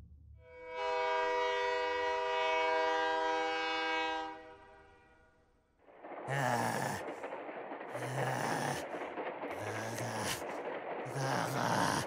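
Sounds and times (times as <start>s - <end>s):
steam locomotive whistle: 0.4s - 5.1s.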